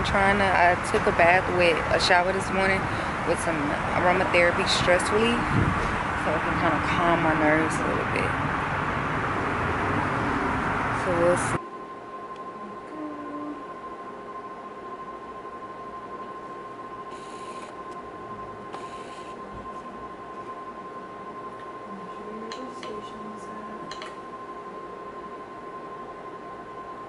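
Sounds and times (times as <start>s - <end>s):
high-pitched electronic whine: 3.5s - 27.0s.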